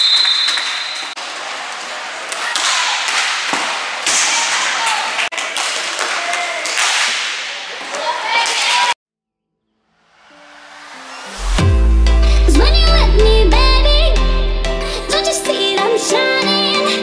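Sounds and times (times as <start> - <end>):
referee's whistle: 0.0 - 1.1
skates on rink floor: 0.1 - 9.0.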